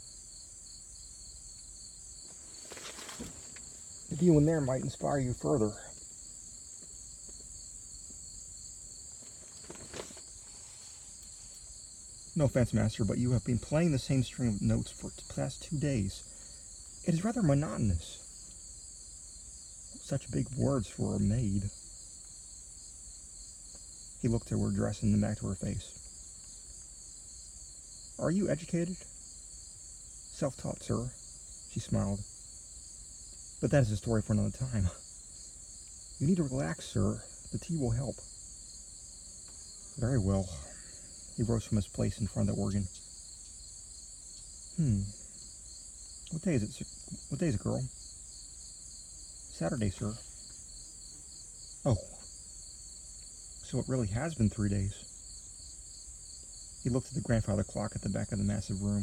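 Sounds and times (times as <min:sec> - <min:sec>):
high-pitched insect chorus: 0:00.0 - 0:59.0.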